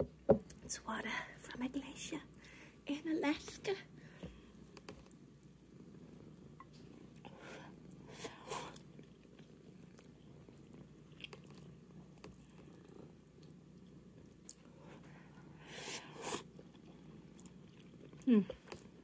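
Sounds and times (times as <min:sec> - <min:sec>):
cat purring: 0:00.7 - 0:19.0
noodles slurped and chewed: 0:08.3 - 0:14.7, 0:15.8 - 0:19.0.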